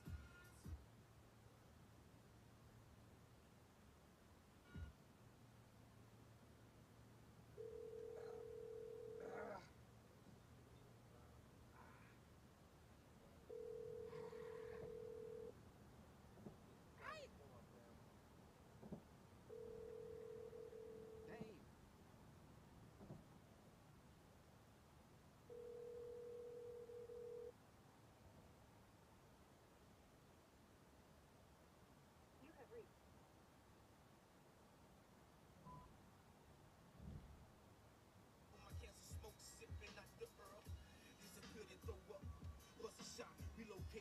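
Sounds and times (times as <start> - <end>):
steady electronic beep tone: 35.6 - 35.9.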